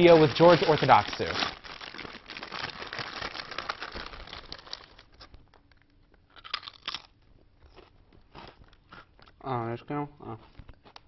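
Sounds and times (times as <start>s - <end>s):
potato chip crunching: 0.0s - 5.2s, 6.3s - 9.3s
chewing: 6.4s - 9.4s.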